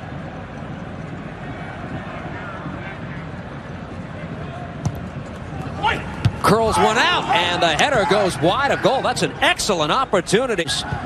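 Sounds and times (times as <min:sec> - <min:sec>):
stadium ambience: 0:00.0 - 0:11.0.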